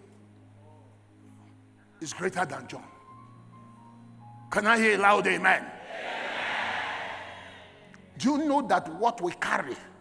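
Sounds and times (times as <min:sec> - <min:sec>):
congregation shouting together: 0:05.8 - 0:07.7.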